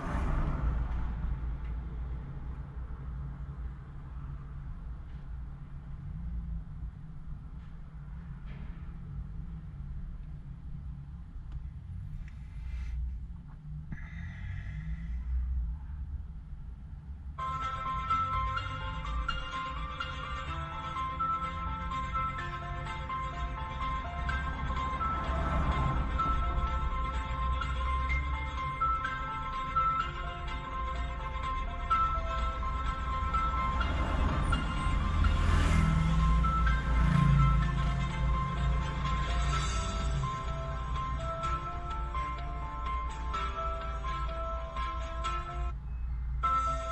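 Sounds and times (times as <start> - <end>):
music: 17.4 - 45.8, 46.4 - 46.9
motorcycle passing: 32.7 - 42.0.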